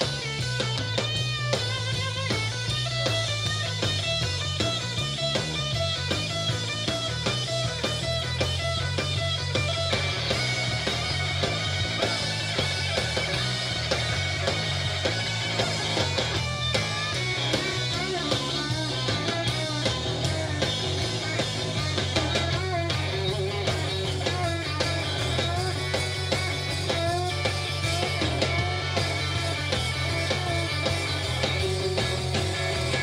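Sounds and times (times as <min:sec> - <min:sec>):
blues-rock band playing: 0:00.0 - 0:33.0
electric guitar lead bending notes: 0:00.0 - 0:33.0.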